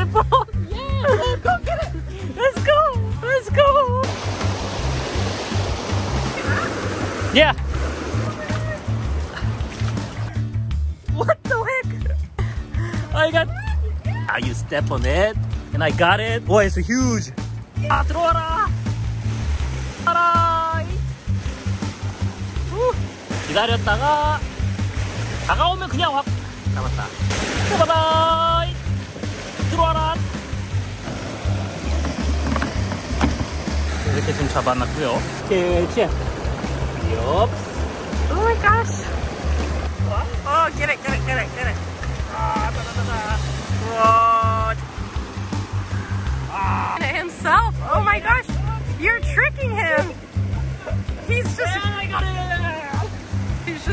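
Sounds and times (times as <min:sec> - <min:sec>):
floodwater rushing over rocks: 0:00.0 - 0:10.6, 0:12.2 - 0:53.9
background music bass pulsing: 0:00.0 - 0:53.9.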